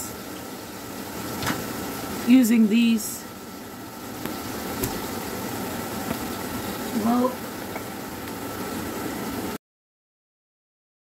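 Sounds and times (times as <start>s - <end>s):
pot hissing on gas hob: 0.0s - 9.6s.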